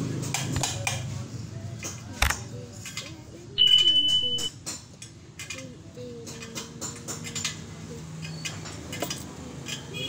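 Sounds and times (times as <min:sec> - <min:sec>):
high steady beep: 0:03.6 - 0:04.5.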